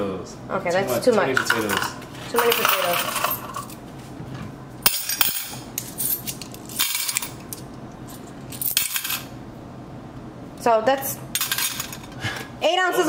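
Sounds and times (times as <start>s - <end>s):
coins clinking against glass: 1.4s - 3.8s, 4.8s - 7.6s, 8.5s - 9.3s, 11.4s - 12.0s.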